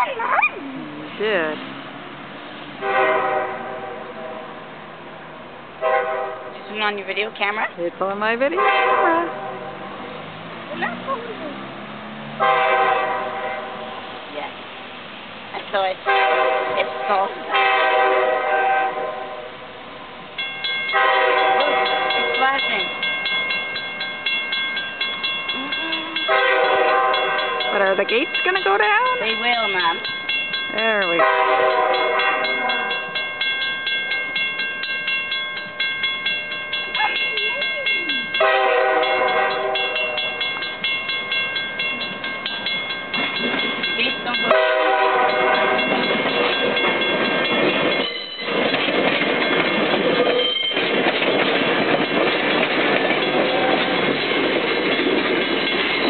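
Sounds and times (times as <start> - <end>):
crossing warning bell dinging: 0.0 - 14.6, 15.6 - 56.0
railcar rumble: 0.0 - 56.0
train horn blasts: 2.8 - 4.7, 5.8 - 7.0, 8.5 - 9.9, 12.4 - 14.0, 16.0 - 19.7, 20.9 - 22.8, 25.6 - 30.0, 30.9 - 33.1, 38.3 - 40.5, 44.0 - 46.6.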